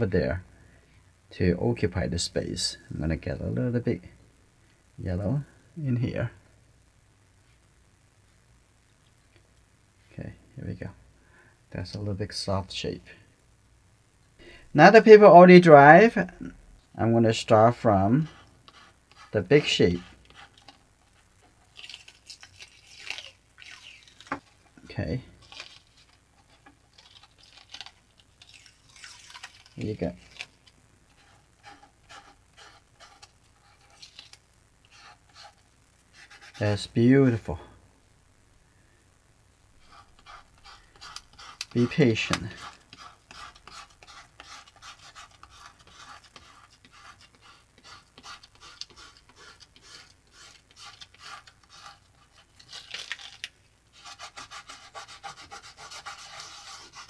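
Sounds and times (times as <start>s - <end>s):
fingertips rubbing paper: 18.2s - 20.8s, 25.4s - 36.7s, 39.8s - 57.0s.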